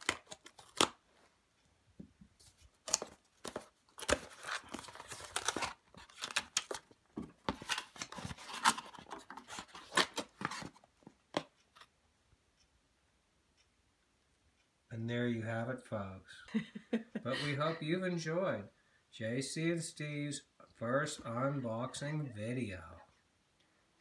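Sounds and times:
cardboard and paper rustling: 2.4s - 11.5s.

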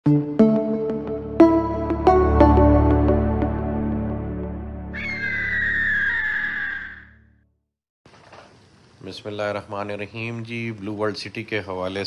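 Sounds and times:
intro music with low chords: 0.1s - 4.9s
bird of prey screech: 4.9s - 7.2s.

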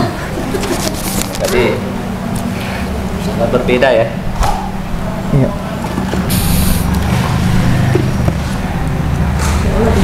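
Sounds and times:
sharp hiss: 6.3s - 6.9s.

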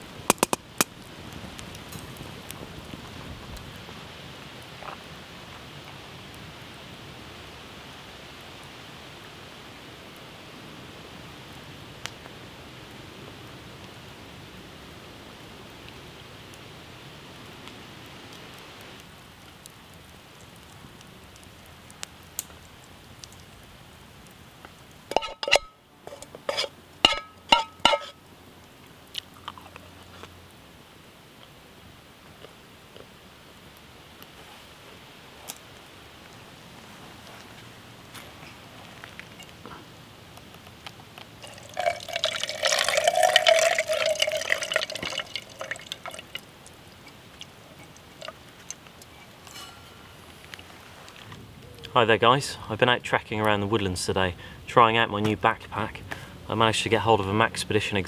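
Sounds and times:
steady background hiss: 0.0s - 58.0s.

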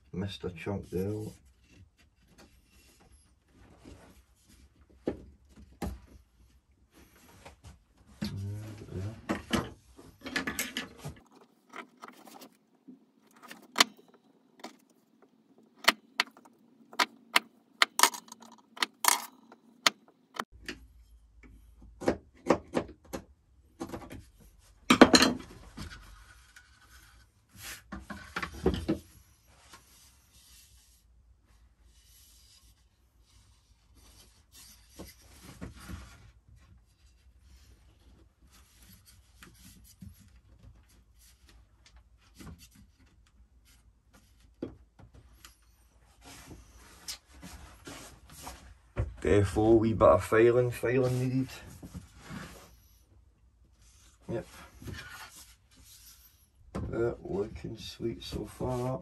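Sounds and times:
wooden parts knocking: 13.2s - 20.4s.

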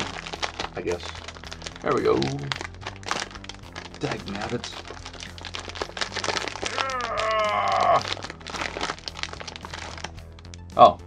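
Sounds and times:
plastic packaging crinkling: 0.0s - 10.6s
drawn-out voice-like cry: 6.6s - 8.1s.

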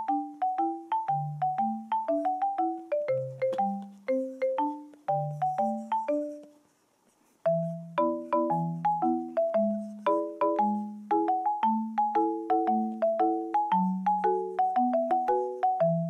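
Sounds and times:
bouncy melody of struck notes: 0.0s - 6.6s, 7.4s - 16.0s.

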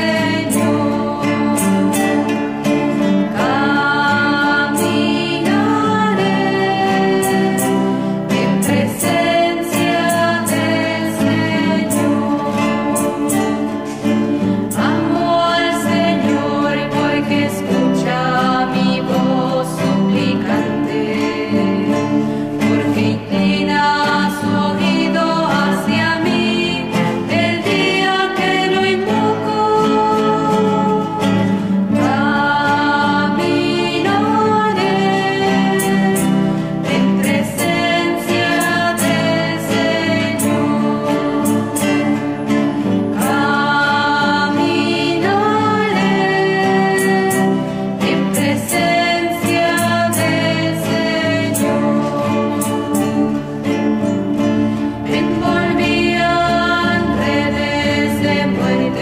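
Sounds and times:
strummed acoustic guitars: 0.0s - 59.0s
women singing a religious song: 0.0s - 59.0s.

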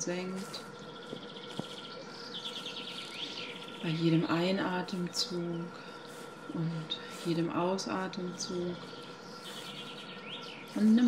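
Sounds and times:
songbirds trilling: 0.0s - 11.0s.

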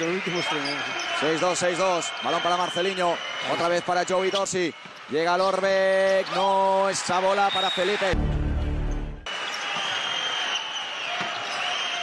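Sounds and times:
sneakers squeaking on court: 10.7s - 11.7s.

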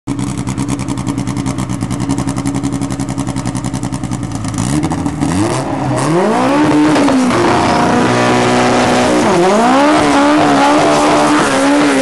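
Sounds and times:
car engine idling lumpily: 0.1s - 5.9s
engine revving: 4.4s - 12.0s.

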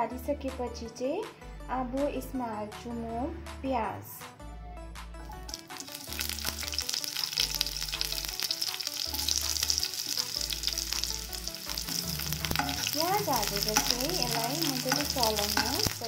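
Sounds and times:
onion sizzling in hot fat: 5.5s - 16.0s.

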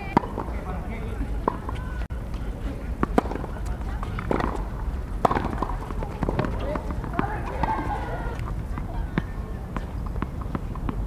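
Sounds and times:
tennis ball bouncing: 0.0s - 11.0s
tennis ball struck by racket: 0.1s - 0.7s, 1.4s - 2.4s, 3.0s - 11.0s.

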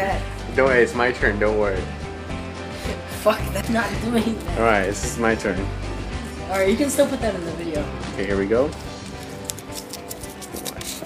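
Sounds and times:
faint background music: 0.0s - 11.0s
paper crinkling: 8.9s - 11.0s.

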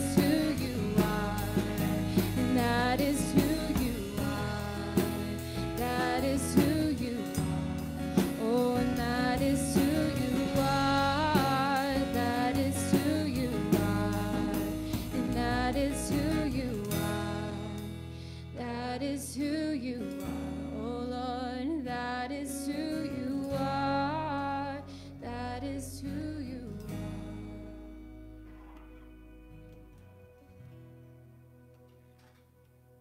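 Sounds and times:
worship band playing: 0.0s - 18.0s.

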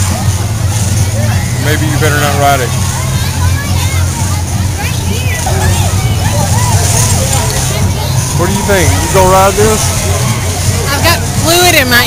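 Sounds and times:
music: 0.0s - 12.0s
steady low rumble: 0.0s - 12.0s
voices: 0.0s - 12.0s.

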